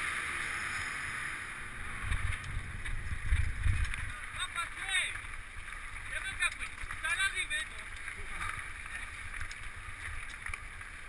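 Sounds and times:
mountain bike on rough trail: 0.0s - 11.0s
riders calling out: 3.9s - 11.0s.

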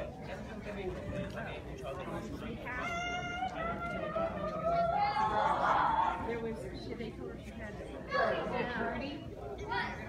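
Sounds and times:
chatter of people in a hall: 0.0s - 10.0s.

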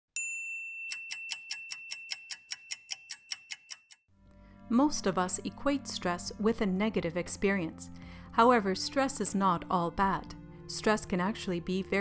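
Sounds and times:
bright bell ding: 0.2s - 3.5s
rapid stopwatch ticking: 0.9s - 4.1s.

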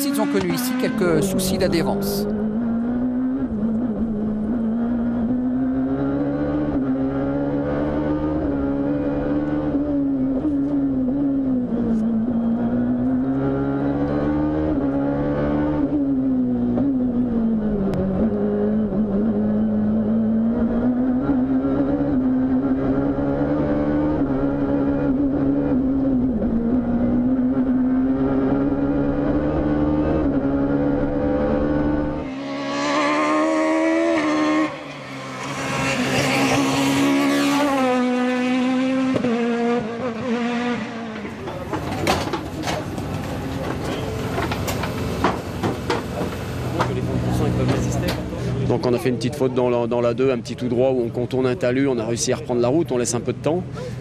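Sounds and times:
rally car approaching: 0.0s - 54.0s
rally car engine revving: 0.0s - 54.0s.

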